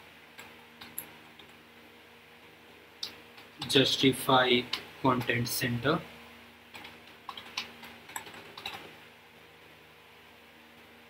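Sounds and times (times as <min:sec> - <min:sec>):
faint steady hum: 0:00.0 - 0:11.0
computer keyboard typing: 0:06.7 - 0:09.0.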